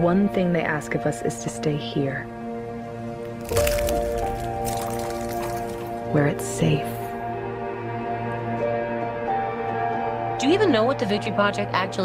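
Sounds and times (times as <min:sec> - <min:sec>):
eggshell cracking and crunching: 0:03.2 - 0:06.2.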